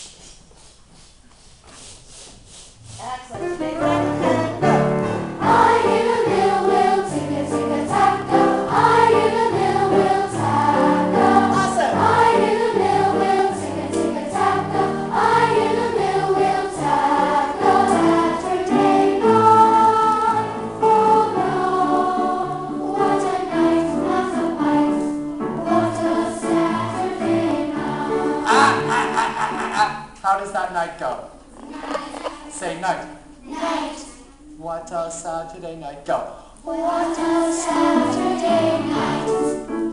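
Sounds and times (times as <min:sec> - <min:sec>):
children's choir singing: 0:03.4 - 0:29.9, 0:31.6 - 0:34.6, 0:36.6 - 0:39.9.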